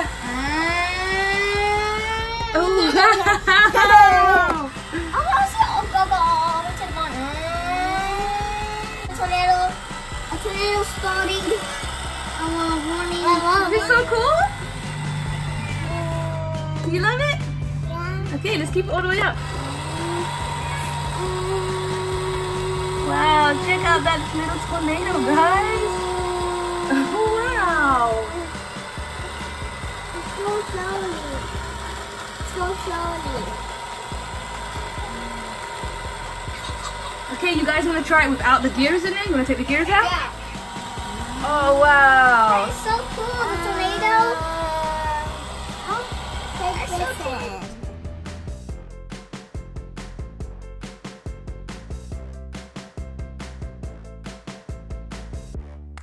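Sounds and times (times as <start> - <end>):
toy blender motor whirring: 0.0 - 17.2, 18.3 - 47.9.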